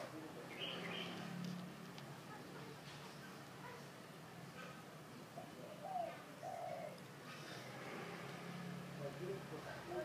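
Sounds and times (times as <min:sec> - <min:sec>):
dove cooing: 0:05.3 - 0:07.1.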